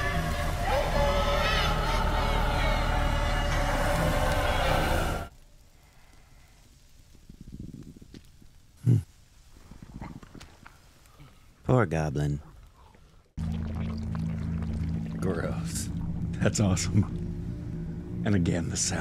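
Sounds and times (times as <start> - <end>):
dense film music: 0.0 - 5.3, 13.4 - 19.0
wavering inhuman shriek: 0.0 - 5.3.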